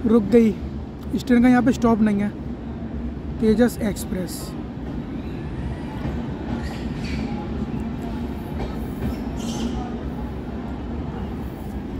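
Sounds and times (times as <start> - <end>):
train carriages rumbling: 0.0 - 11.9
faint voices: 3.8 - 11.9.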